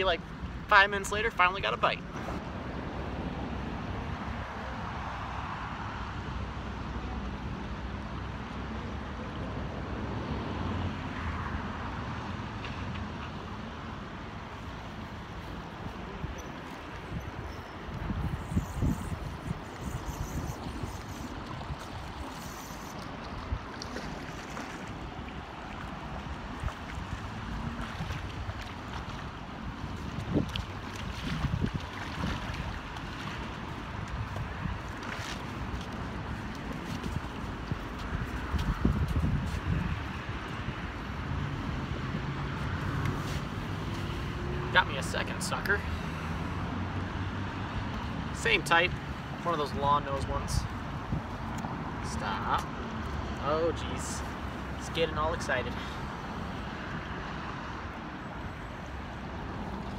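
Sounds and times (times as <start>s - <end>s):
road traffic on bridge: 0.0s - 59.9s
river water rushing: 13.5s - 38.5s, 45.8s - 59.9s
wind buffeting microphone: 15.2s - 42.8s, 50.4s - 52.0s.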